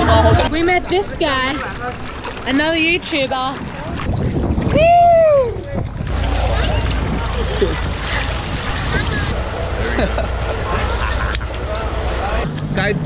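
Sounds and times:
water sloshing: 0:00.0 - 0:12.2
wind rumble on microphone: 0:02.6 - 0:11.6
person whooping: 0:04.7 - 0:05.6.

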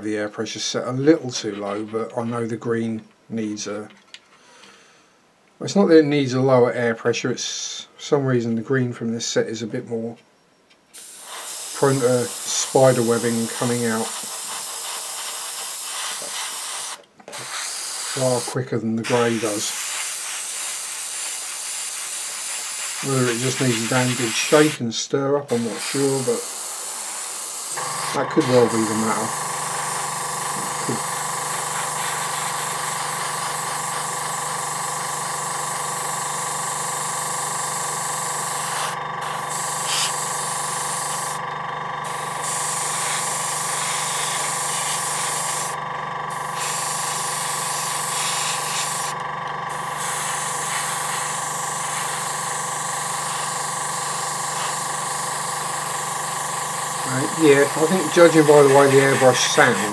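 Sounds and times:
airbrush spraying hiss: 0:10.9 - 0:24.8, 0:25.5 - 0:41.4, 0:42.0 - 0:59.9
air compressor humming: 0:10.9 - 0:59.9.

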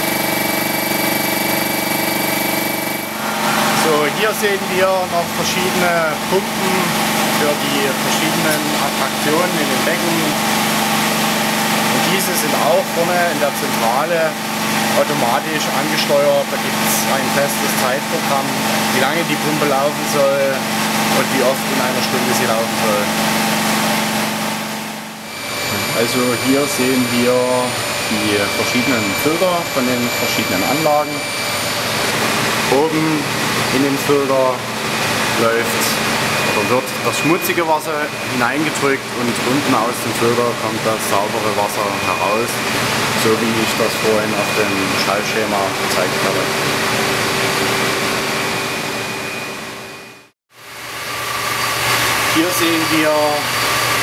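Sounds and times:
machine hum with high whining tones: 0:00.0 - 0:54.0
pumps humming and rushing: 0:00.0 - 0:54.0.

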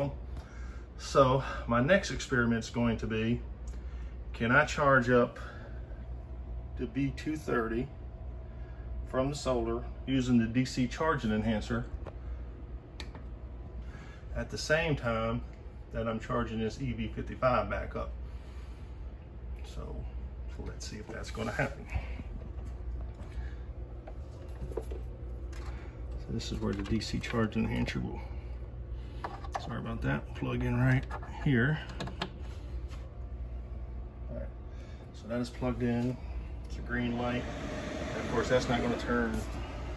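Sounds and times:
low electrical hum: 0:00.0 - 0:39.9.

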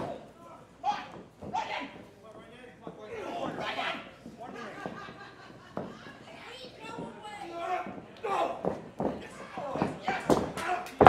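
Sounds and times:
spectators shouting and talking: 0:00.0 - 0:11.0.

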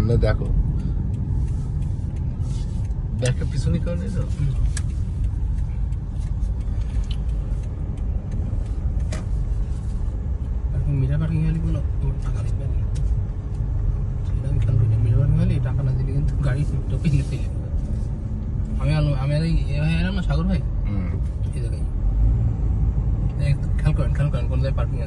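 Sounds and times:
people talking: 0:00.0 - 0:00.6, 0:03.2 - 0:04.7, 0:10.8 - 0:12.9, 0:14.3 - 0:17.6, 0:18.8 - 0:21.9, 0:23.4 - 0:25.0
car rumble inside cabin: 0:00.0 - 0:25.0.

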